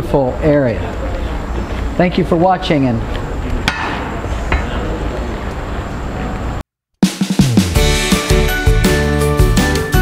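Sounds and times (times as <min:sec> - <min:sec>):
street low rumble: 0:00.0 - 0:06.6
sharp knocks: 0:03.6 - 0:04.8.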